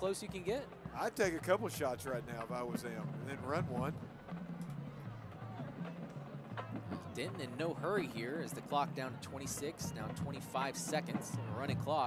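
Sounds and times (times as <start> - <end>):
faint band music: 0.0 - 12.0
murmur of background noise: 0.0 - 12.0.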